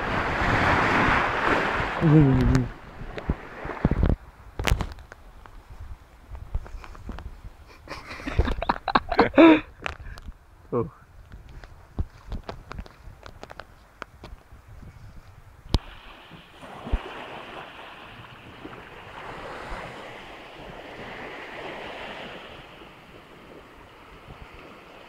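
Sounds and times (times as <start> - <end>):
surf breaking on a beach: 0.0 - 4.8, 15.7 - 25.0
footsteps crackling in undergrowth: 11.3 - 14.5.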